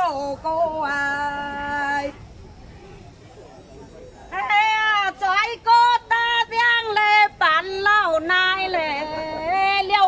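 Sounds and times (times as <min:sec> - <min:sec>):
woman singing unaccompanied: 0:00.0 - 0:02.2, 0:04.3 - 0:10.0
low background murmur: 0:00.0 - 0:10.0.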